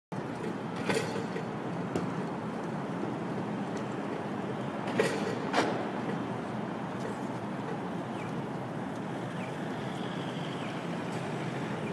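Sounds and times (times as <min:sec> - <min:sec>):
traffic and urban hum: 0:00.1 - 0:11.9.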